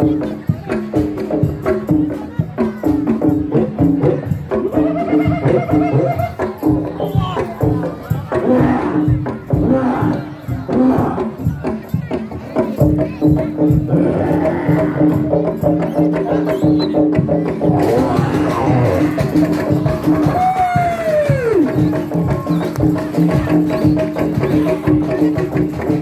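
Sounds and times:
drums: 0:00.0 - 0:26.0.

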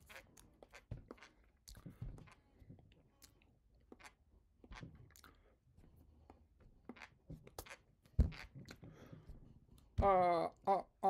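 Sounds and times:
mouth clicks and smacks: 0:00.0 - 0:05.5, 0:06.2 - 0:08.9.

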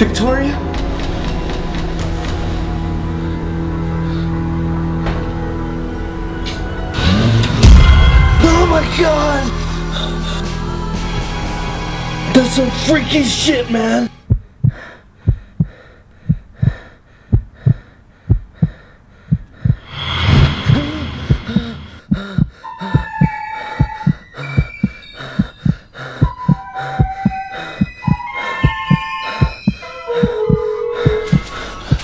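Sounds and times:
high held tense music notes: 0:00.0 - 0:14.3, 0:19.9 - 0:32.0
heartbeat-like thumping: 0:14.2 - 0:19.9, 0:20.7 - 0:32.0
rushing swell: 0:19.9 - 0:22.0.

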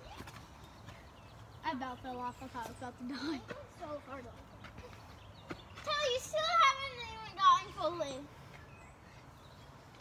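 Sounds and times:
excited child talking: 0:05.8 - 0:08.3.

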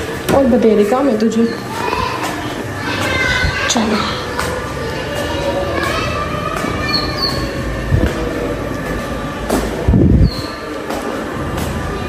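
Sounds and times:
footsteps on tiled stairs: 0:00.0 - 0:12.0.

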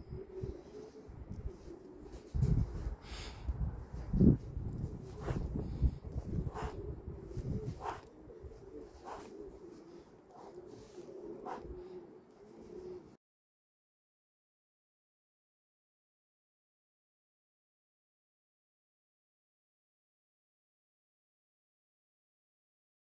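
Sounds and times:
pigeons cooing: 0:00.0 - 0:03.4, 0:04.7 - 0:13.2
low rumbles on microphone: 0:02.2 - 0:09.6.

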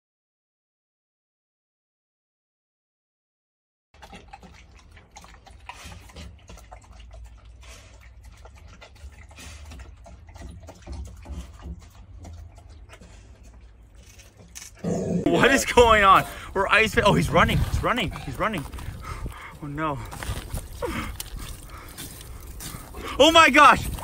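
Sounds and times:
dog lapping from metal bowl: 0:04.0 - 0:14.6, 0:15.2 - 0:24.0.

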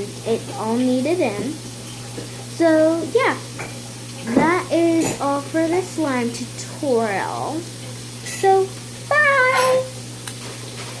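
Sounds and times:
girl's high vocal call: 0:09.1 - 0:09.9.

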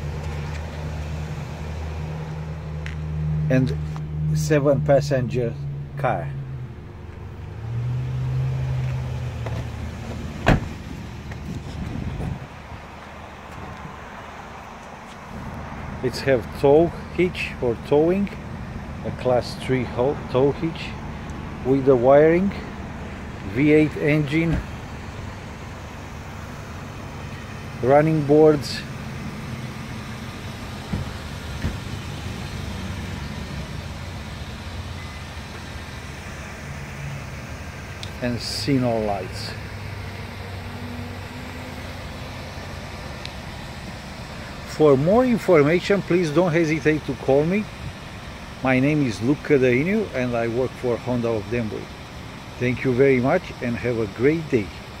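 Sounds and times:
motor vehicle hum: 0:00.0 - 0:55.0.

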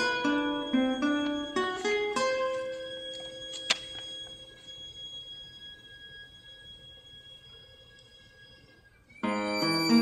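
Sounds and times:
classical guitar: 0:00.0 - 0:06.2, 0:09.0 - 0:10.0
violin: 0:00.0 - 0:10.0.

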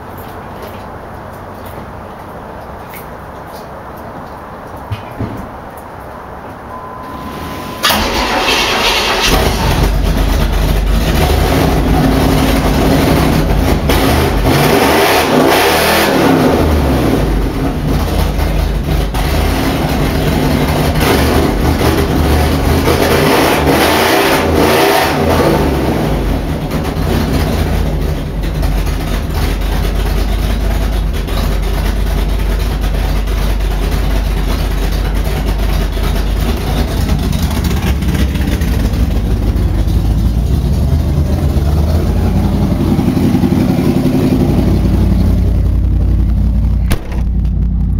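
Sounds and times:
car engine starting and idling: 0:06.7 - 0:47.9
engine revving: 0:07.3 - 0:32.8, 0:35.2 - 0:47.3.

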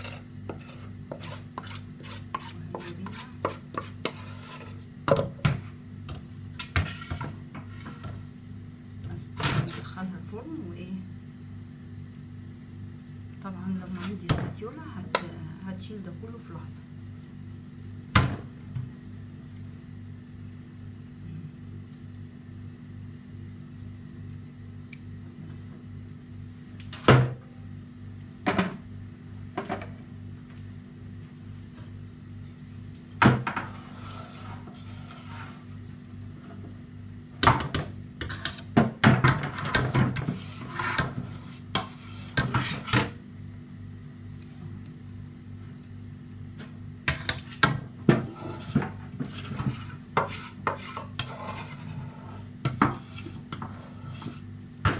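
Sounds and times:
utensil scraping metal cake pan: 0:00.0 - 0:04.8, 0:33.6 - 0:35.7, 0:39.4 - 0:43.1, 0:48.2 - 0:54.5
steady low hum: 0:00.0 - 0:54.9.

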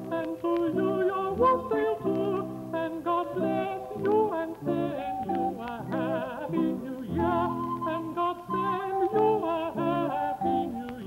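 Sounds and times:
choir singing a carol: 0:00.0 - 0:11.0.

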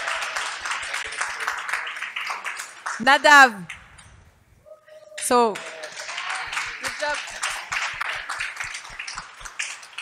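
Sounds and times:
audience clapping: 0:00.0 - 0:04.0, 0:05.2 - 0:10.0.

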